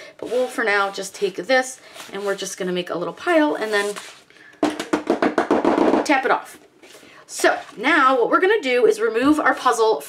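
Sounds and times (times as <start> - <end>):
plastic mat tapping on table: 4.6 - 6.2.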